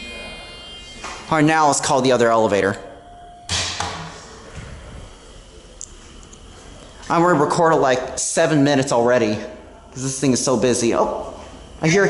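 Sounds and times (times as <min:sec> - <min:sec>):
elevator button beep: 0:00.0 - 0:04.1
low lobby hum: 0:00.0 - 0:12.0.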